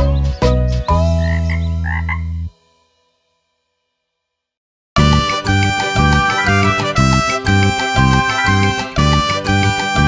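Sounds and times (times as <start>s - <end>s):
cartoon frog croaks: 1.2s - 2.5s.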